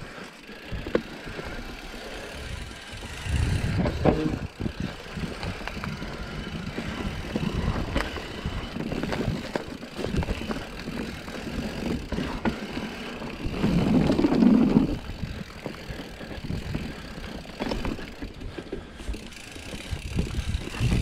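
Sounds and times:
bike rattling: 0.0s - 21.0s
tyres rumbling on dirt: 0.6s - 21.0s.

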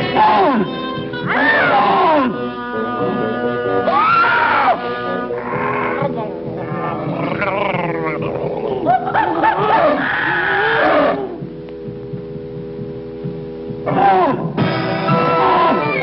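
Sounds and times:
animal roars and cries: 1.3s - 11.4s, 13.9s - 16.0s.

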